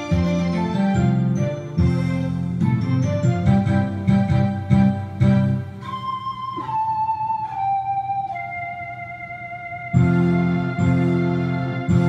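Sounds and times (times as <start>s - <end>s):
instrumental beat: 0.0s - 12.0s
slow melody of held notes: 0.0s - 12.0s
sustained chord with bass: 8.7s - 12.0s.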